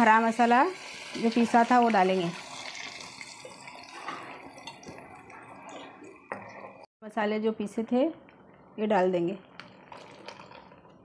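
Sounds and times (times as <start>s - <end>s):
paste sizzling in hot oil: 0.0s - 4.8s.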